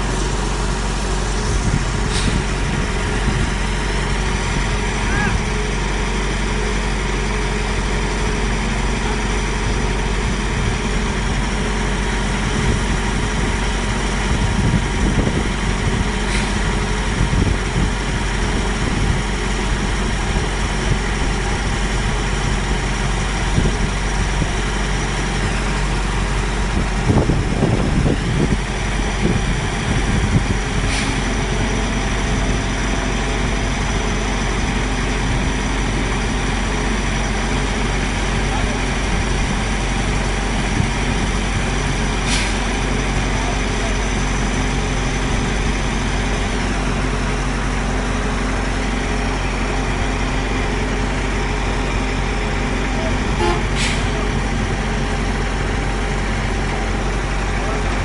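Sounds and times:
crane diesel engine running: 0.0s - 58.0s.

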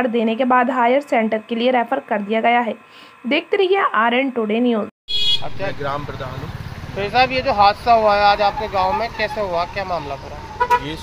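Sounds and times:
people talking: 0.0s - 4.9s, 5.5s - 11.0s
short high vehicle horn toot: 5.1s - 5.6s, 10.6s - 11.0s
vehicle engine throbbing: 5.4s - 11.0s.

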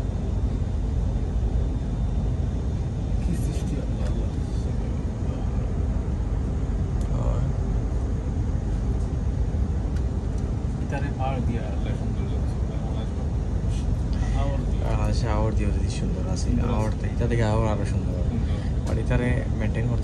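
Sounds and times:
train rumble from inside carriage: 0.0s - 20.0s.

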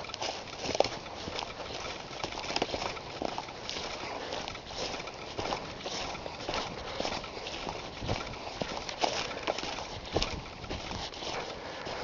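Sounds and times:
footsteps crunching dry leaves: 0.0s - 12.0s.

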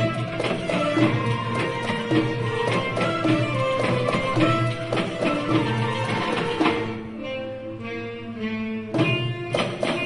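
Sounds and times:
slow ensemble melody: 0.0s - 10.0s.

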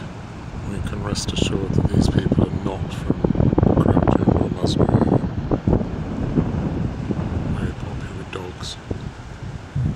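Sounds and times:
wind buffeting microphone: 0.0s - 9.9s.

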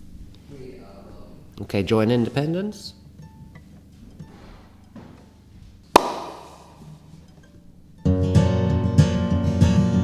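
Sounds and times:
sharp hand clap: 6.0s - 6.8s.

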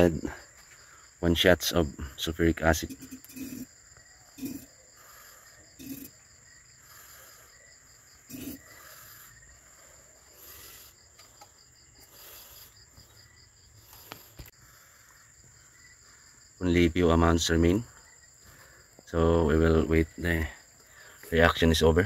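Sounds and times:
crickets chirping: 0.0s - 22.0s.

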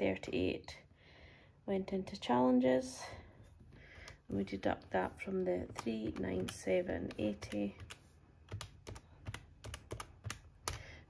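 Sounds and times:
calculator keys clicking: 5.6s - 11.0s.

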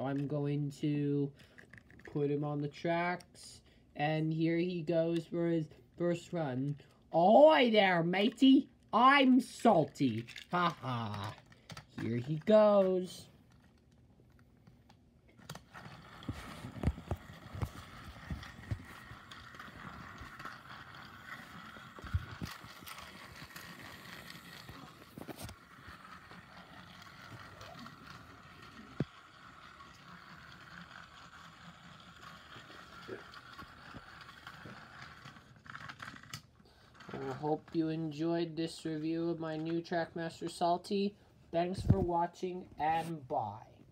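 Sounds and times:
toy train motor whine: 15.5s - 37.5s.

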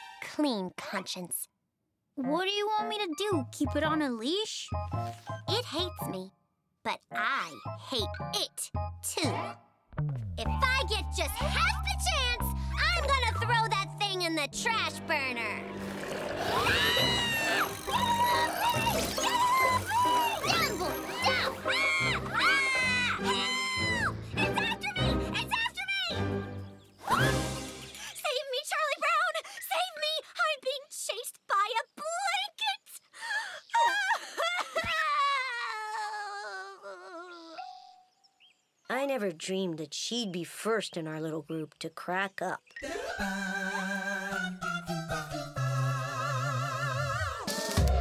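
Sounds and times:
background music: 2.2s - 28.2s, 42.8s - 48.0s
child crying and yelling: 10.7s - 14.2s, 16.5s - 26.2s, 27.0s - 27.4s, 33.7s - 37.8s.

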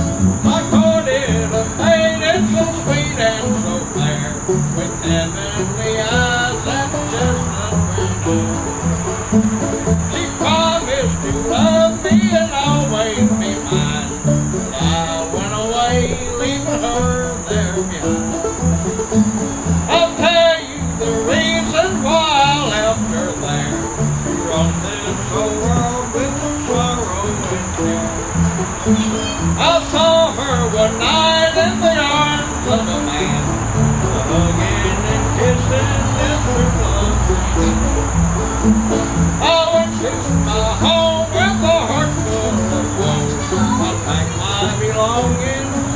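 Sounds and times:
insect chorus: 0.0s - 45.9s
person singing: 0.0s - 45.9s
strummed acoustic guitars: 0.0s - 45.9s
upright bass plucking: 0.0s - 45.9s.

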